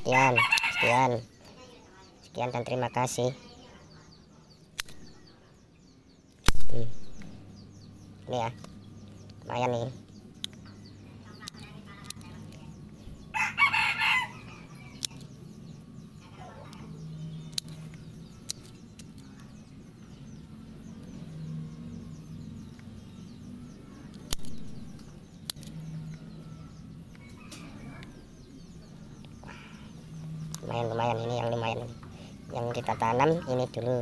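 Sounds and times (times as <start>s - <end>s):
chicken calling: 0.0s - 1.2s, 13.3s - 15.0s
low background hum: 0.0s - 34.0s
pruning shears snipping: 4.8s - 5.1s, 24.1s - 25.8s.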